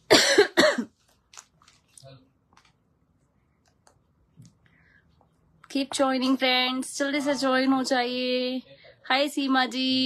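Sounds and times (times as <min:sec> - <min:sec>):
woman coughing: 0:00.1 - 0:00.9.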